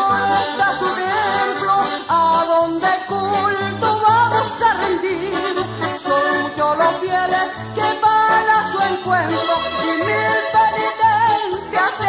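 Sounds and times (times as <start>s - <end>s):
ranchera music: 0.0s - 12.0s.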